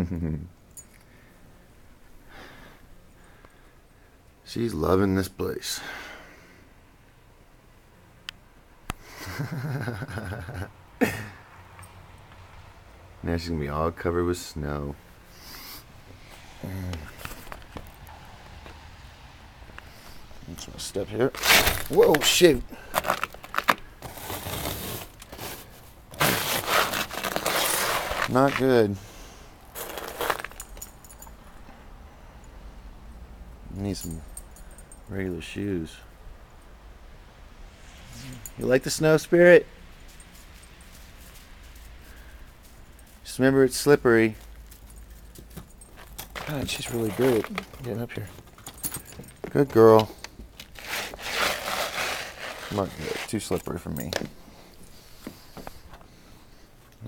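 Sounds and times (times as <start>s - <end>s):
footsteps shuffling on snow: 19.9s - 29.0s, 29.6s - 30.7s, 46.4s - 48.4s, 50.7s - 53.9s
wet snow crunching underfoot: 21.4s - 28.9s, 29.6s - 30.6s
shoe scuffing on snow: 26.2s - 28.8s.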